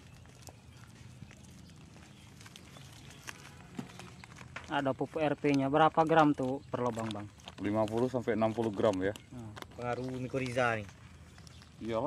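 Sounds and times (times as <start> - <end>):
plastic bags crunching and rustling: 0.0 - 12.0.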